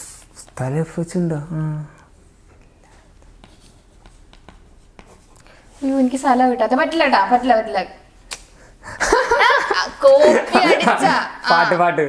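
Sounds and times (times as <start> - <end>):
pen writing on paper: 3.4 - 5.4
person speaking: 9.8 - 12.0.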